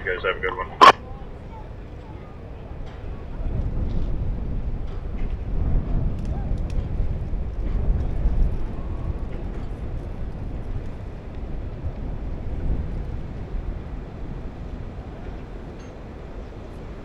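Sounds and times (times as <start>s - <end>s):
ship passing low rumble: 0.0s - 17.0s
wind buffeting microphone: 0.2s - 17.0s.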